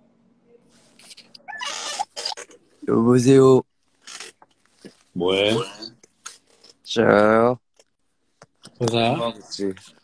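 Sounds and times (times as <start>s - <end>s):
man speaking: 8.8s - 9.9s.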